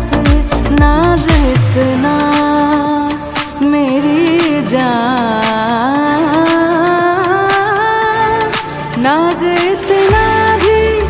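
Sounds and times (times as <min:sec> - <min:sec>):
steady beat: 0:00.0 - 0:11.0
woman singing film song: 0:00.0 - 0:11.0.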